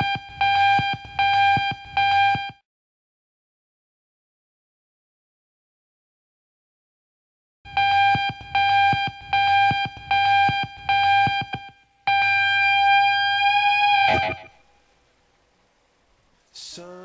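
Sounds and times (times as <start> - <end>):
electronic beeps: 0.0 - 2.6, 7.7 - 14.6.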